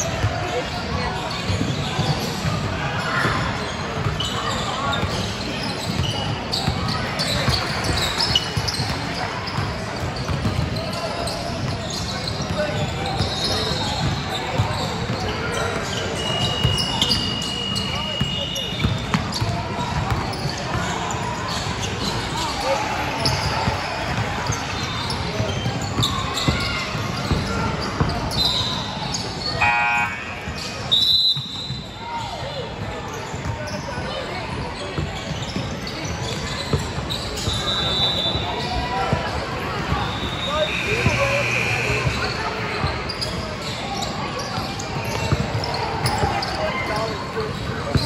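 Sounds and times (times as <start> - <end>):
voices echoing in a hall: 0.0 - 48.0
short high whistle: 30.9 - 31.8.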